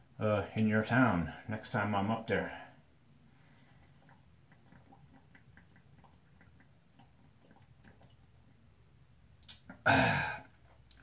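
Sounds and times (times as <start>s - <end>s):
man gulping from a bottle: 3.6s - 8.6s, 9.4s - 11.0s.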